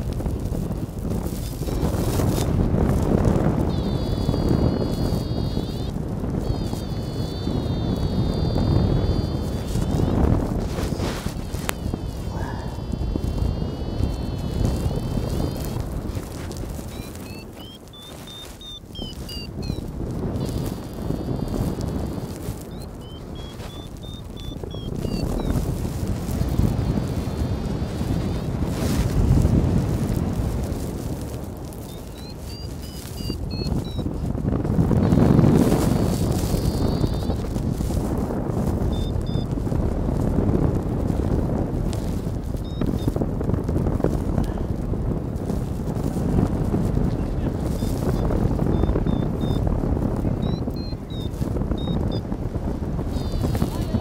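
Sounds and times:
wind buffeting microphone: 0:00.0 - 0:54.0
faint short high chirps: 0:16.9 - 0:19.8.

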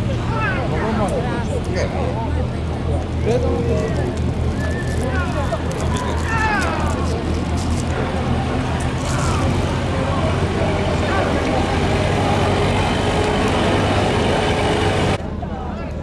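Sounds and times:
men's voices: 0:00.0 - 0:14.2.

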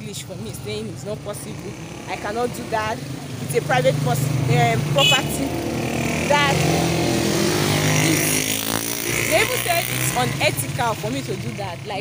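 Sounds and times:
motorcycle engine passing by: 0:03.5 - 0:12.0.

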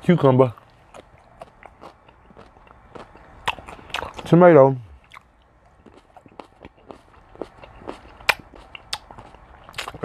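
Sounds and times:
man chewing tomato: 0:00.4 - 0:04.3, 0:04.9 - 0:10.0.

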